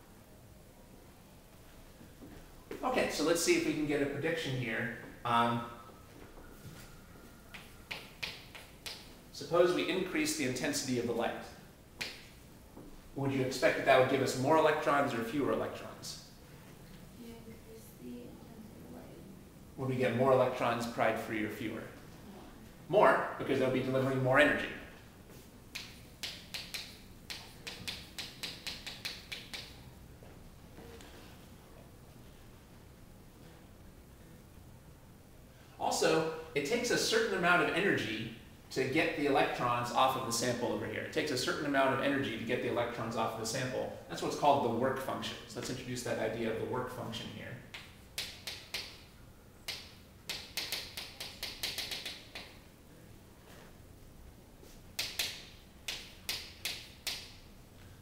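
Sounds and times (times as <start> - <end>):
chalk tapping and scratching: 25.3 - 29.8.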